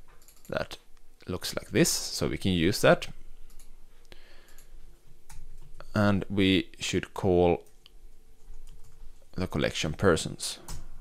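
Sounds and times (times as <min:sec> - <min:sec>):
computer mouse clicks: 0:03.5 - 0:03.7.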